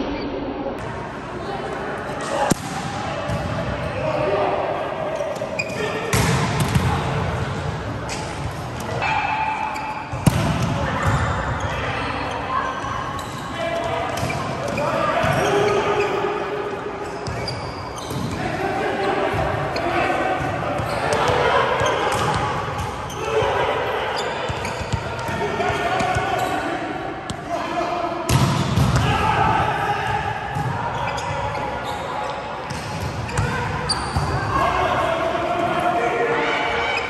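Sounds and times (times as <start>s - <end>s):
volleyball struck with slaps: 2.4s - 3.5s, 6.1s - 7.0s, 10.1s - 11.2s.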